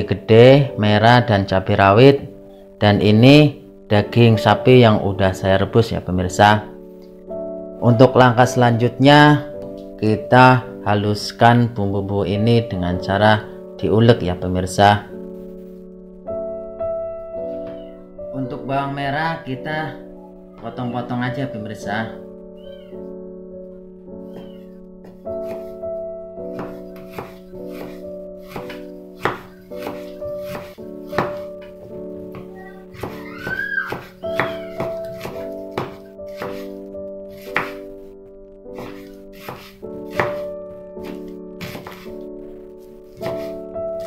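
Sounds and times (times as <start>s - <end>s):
instrumental background music: 0.0s - 44.0s
knife chopping on wooden board: 26.5s - 31.5s, 32.4s - 36.7s, 37.4s - 37.8s, 38.8s - 42.1s, 43.2s - 43.6s.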